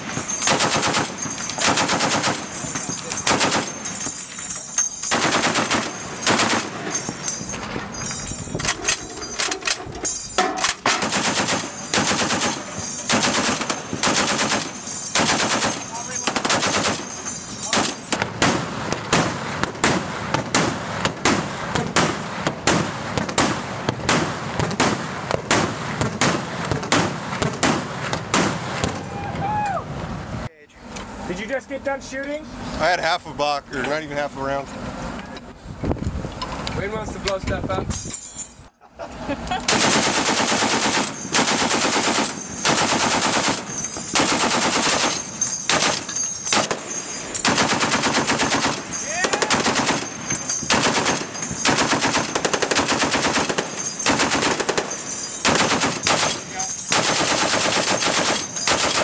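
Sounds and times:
heavy machine gun bursts: 0.0s - 28.8s, 39.6s - 59.0s.

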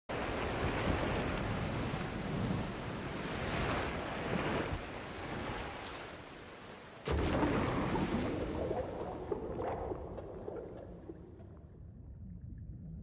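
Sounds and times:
waves rushing: 0.1s - 11.4s
wind: 0.1s - 13.0s.

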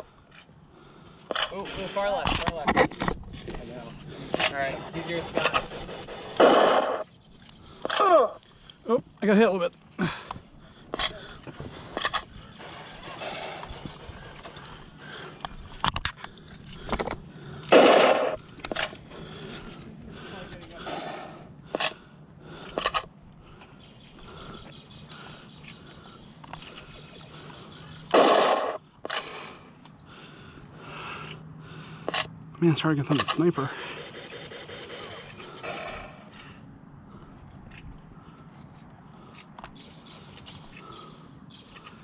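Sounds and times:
blaster shot bursts: 6.3s - 7.1s, 17.7s - 18.4s, 28.1s - 28.8s, 33.9s - 36.2s.

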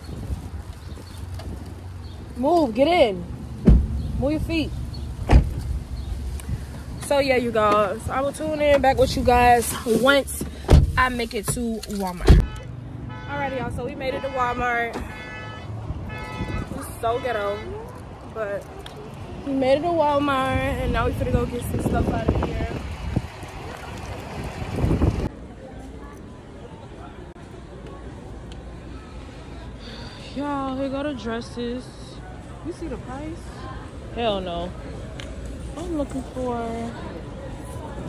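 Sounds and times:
wind buffeting microphone: 0.0s - 2.4s, 20.1s - 25.3s
car door shutting: 3.6s - 4.0s, 5.2s - 5.7s.

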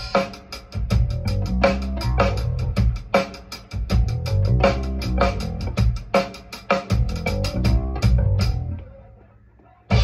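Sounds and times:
electric bass guitar: 1.0s - 2.9s, 3.9s - 5.9s, 7.0s - 9.0s.

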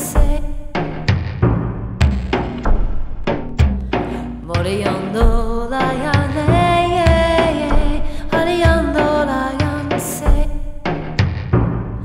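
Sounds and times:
chill-out music: 0.0s - 12.0s.

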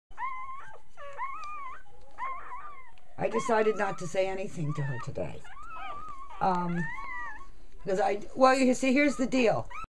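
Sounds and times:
puppy whining: 0.1s - 9.9s.

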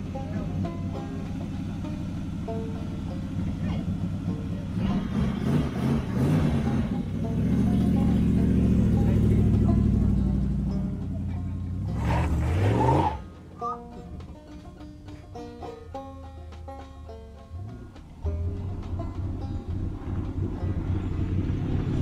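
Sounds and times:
car engine revving: 0.0s - 22.0s
quiet plucked music: 0.0s - 22.0s.

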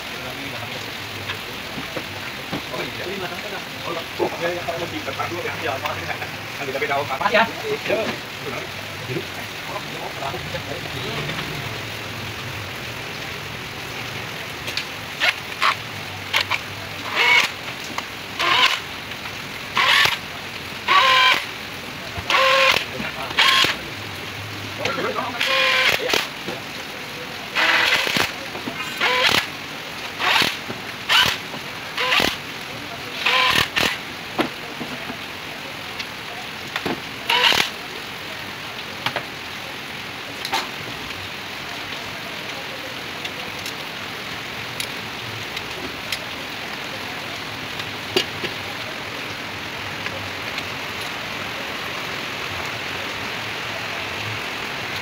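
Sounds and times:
indistinct voices talking: 0.0s - 39.0s.

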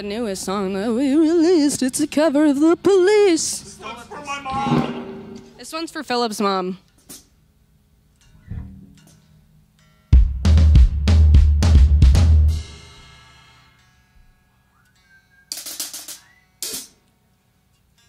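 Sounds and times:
hissy cymbal hits: 4.5s - 5.8s, 12.5s - 14.0s
kick and snare drum hits: 10.2s - 12.6s.

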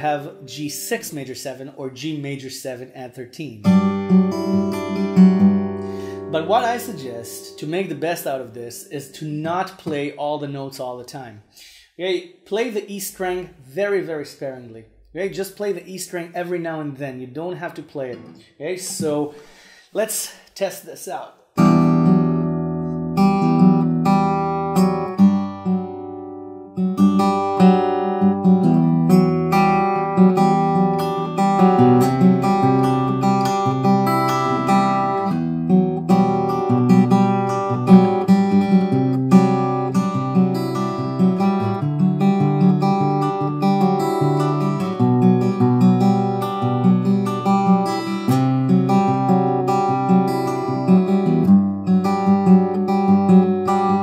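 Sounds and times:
fingerpicked acoustic guitar: 3.6s - 8.0s, 18.1s - 18.6s, 21.6s - 54.0s.

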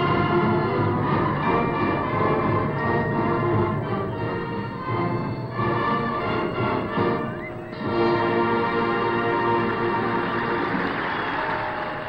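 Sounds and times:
marching bands playing: 0.0s - 11.1s.

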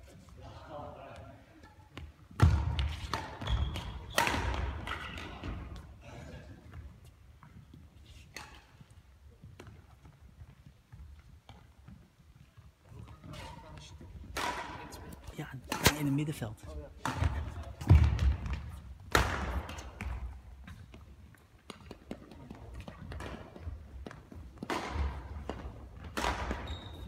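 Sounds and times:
racket striking shuttlecock: 1.9s - 5.6s, 14.3s - 14.9s, 15.7s - 16.3s, 17.0s - 20.4s, 21.7s - 26.7s.

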